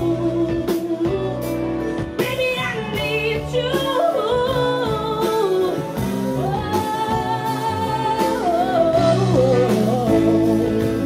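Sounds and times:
funk band playing: 0.0 - 11.0
woman singing lead vocal: 0.0 - 11.0.

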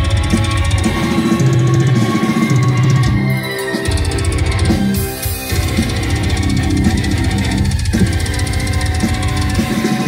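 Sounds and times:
metal band playing live: 0.0 - 10.0
rapid drumming: 0.0 - 10.0.

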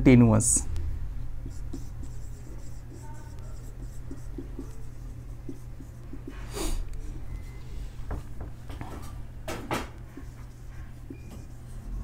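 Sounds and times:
low steady hum: 0.0 - 12.0
marker pen writing on whiteboard: 1.4 - 12.0.

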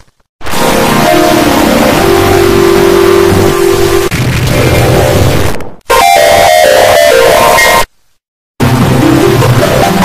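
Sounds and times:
distorted logo sound: 0.4 - 7.9.

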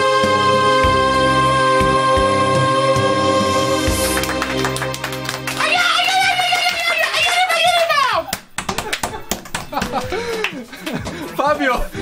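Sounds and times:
small group clapping: 4.0 - 11.7.

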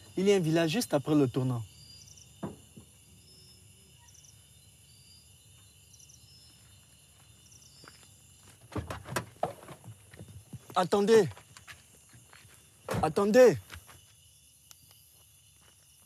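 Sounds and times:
crickets chirping: 0.0 - 16.0.

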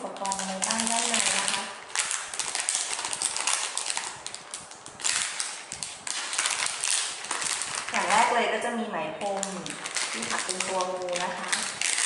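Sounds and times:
plastic packaging crinkling: 0.0 - 8.6, 9.2 - 12.0.

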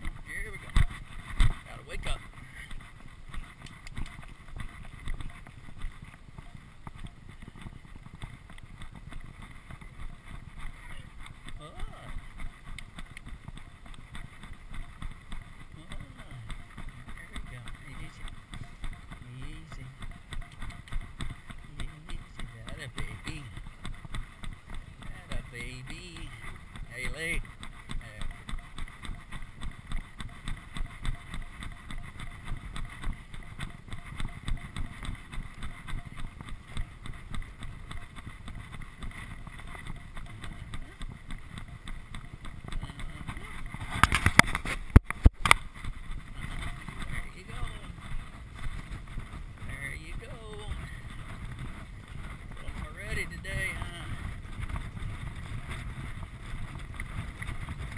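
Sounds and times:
horse hoofbeats galloping: 0.0 - 57.9
wind rushing over microphone: 31.9 - 57.9.

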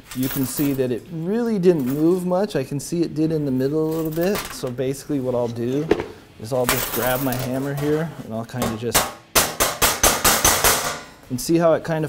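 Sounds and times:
hammer tapping sheet metal: 8.6 - 11.2.

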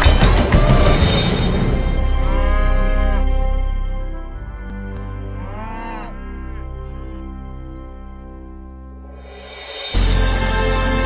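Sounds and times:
background music: 0.0 - 11.0
cow mooing: 2.2 - 3.4, 4.7 - 7.3.

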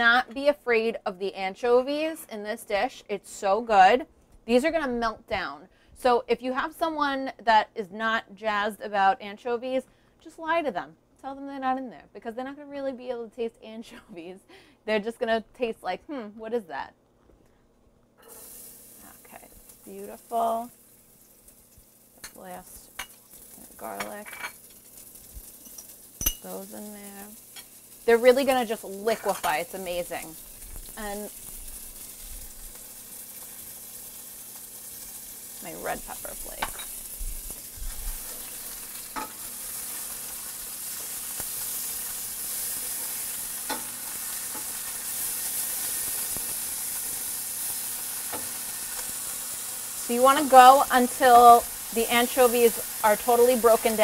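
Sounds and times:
garlic sizzling in hot oil: 18.2 - 54.0.

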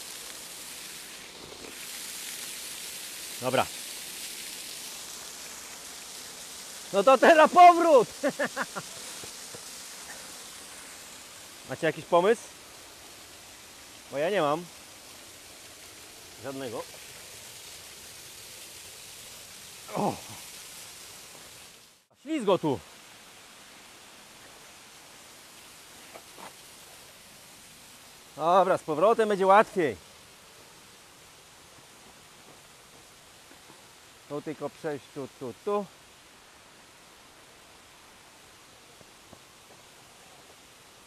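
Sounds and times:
waterfall rushing: 0.0 - 41.0
person speaking: 6.9 - 9.1, 19.9 - 20.4.

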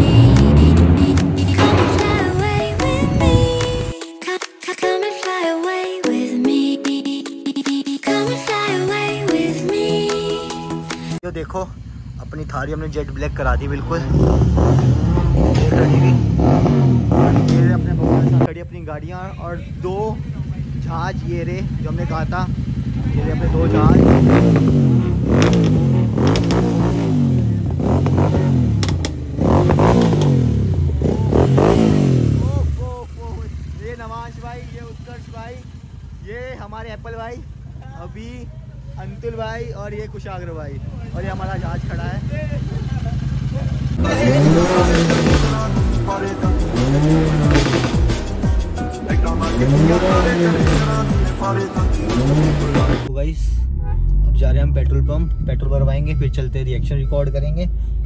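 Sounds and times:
vehicle engine rumbling: 0.0 - 4.0, 11.2 - 58.0
men's voices: 8.1 - 29.1, 29.9 - 58.0.

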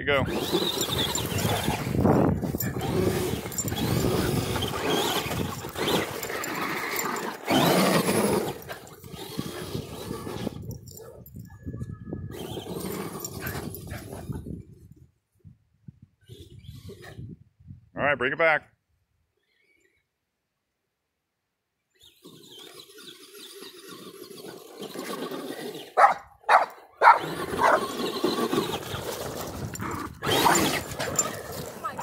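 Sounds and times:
tyres churning snow: 0.0 - 10.9, 12.4 - 14.3, 22.2 - 26.2, 27.0 - 32.0
rc truck motor whine: 0.2 - 11.1, 12.3 - 14.7, 21.9 - 26.0, 26.8 - 31.9.

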